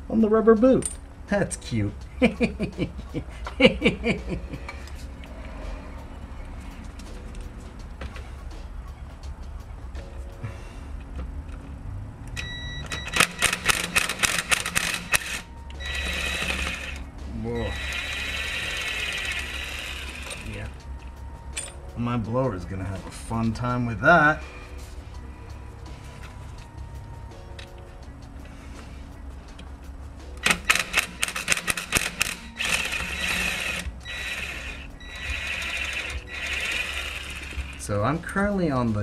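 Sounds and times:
impact driver motor whirring: 0:13.2 - 0:17.0, 0:32.0 - 0:37.8.

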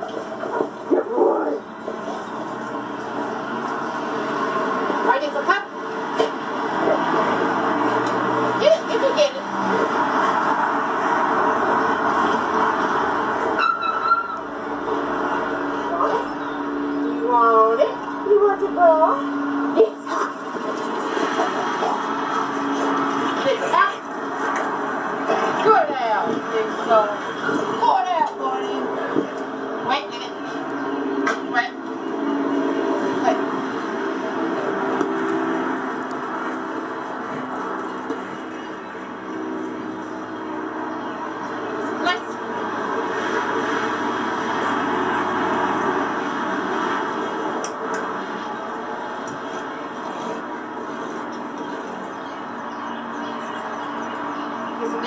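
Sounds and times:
muffled television audio: 0:00.0 - 0:13.5, 0:14.8 - 0:44.9, 0:46.3 - 0:55.0.

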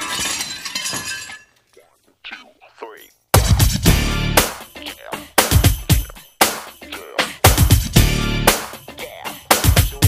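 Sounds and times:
glass shattering: 0:00.0 - 0:01.6.

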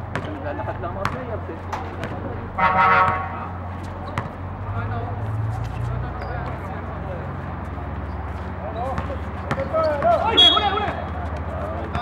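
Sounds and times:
basketball bouncing on hard court: 0:00.1 - 0:00.4, 0:01.0 - 0:01.4, 0:02.0 - 0:02.3, 0:03.0 - 0:03.3, 0:04.0 - 0:04.4, 0:08.8 - 0:12.0
players calling out: 0:07.7 - 0:12.0.

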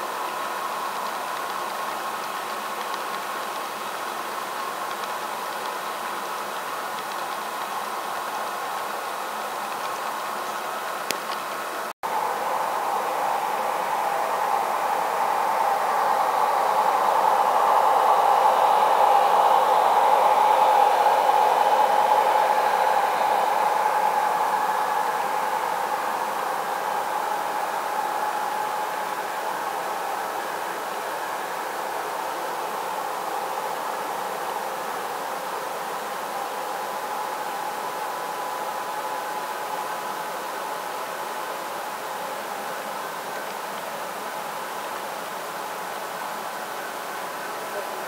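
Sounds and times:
model train whirring rumble: 0:00.0 - 0:48.0.

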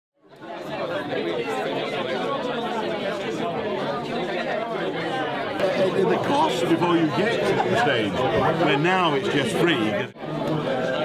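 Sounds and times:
crowd chatter: 0:00.2 - 0:11.0.

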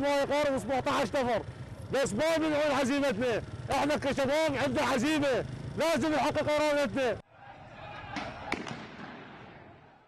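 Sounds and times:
gunshot echoing: 0:08.2 - 0:09.4.

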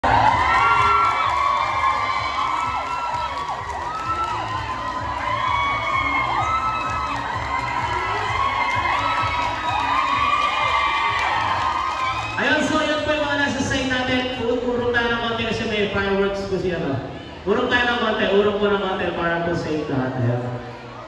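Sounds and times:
children shouting and cheering: 0:00.0 - 0:12.8.

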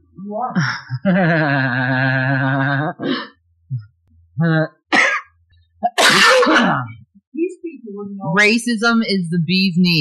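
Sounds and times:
person coughing: 0:04.9 - 0:07.0.

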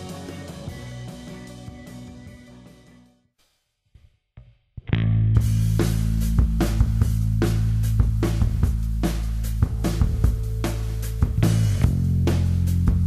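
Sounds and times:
live rock band: 0:00.0 - 0:03.0, 0:05.4 - 0:13.0
drum hits: 0:05.4 - 0:13.0.

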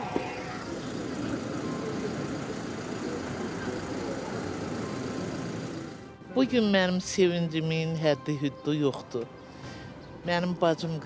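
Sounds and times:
faint murmur of voices: 0:00.0 - 0:05.8
street traffic: 0:00.0 - 0:06.3.

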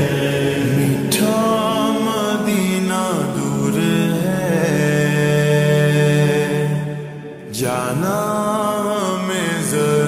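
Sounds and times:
reverb-heavy devotional singing: 0:00.0 - 0:10.0.

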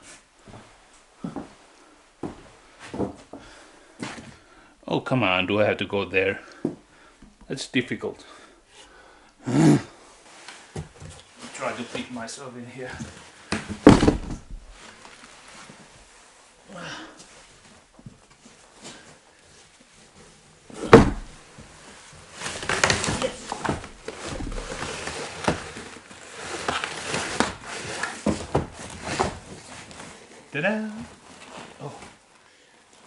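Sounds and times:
heavy thud: 0:13.6 - 0:14.8, 0:20.8 - 0:21.4
clothes scraping against wood: 0:17.1 - 0:32.2.

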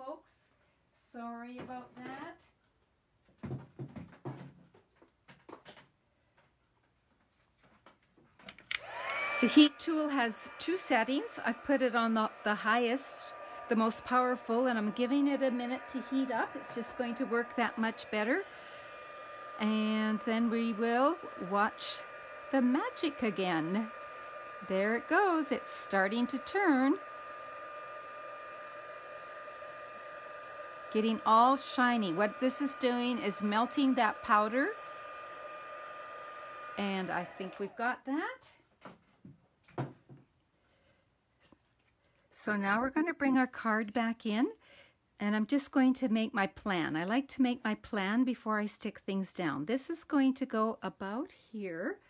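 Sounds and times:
heat tool blowing airy hiss: 0:08.8 - 0:37.8
steady high tone: 0:09.1 - 0:37.7.

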